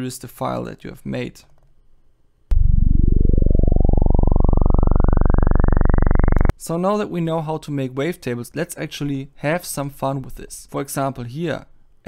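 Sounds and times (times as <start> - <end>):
loud low sawtooth buzz: 2.5 - 6.5.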